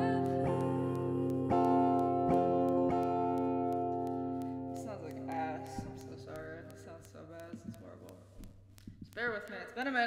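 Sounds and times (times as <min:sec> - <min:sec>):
acoustic guitar strummed slowly: 0:00.0 - 0:06.9.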